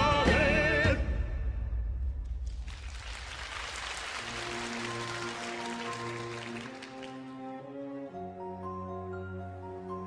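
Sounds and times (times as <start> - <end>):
audience applauding: 2.5 - 7.7.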